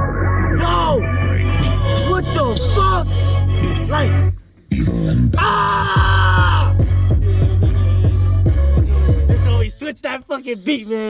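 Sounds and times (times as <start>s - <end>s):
drill beat with sliding bass: 0.0s - 9.8s
person shouting: 5.4s - 6.8s.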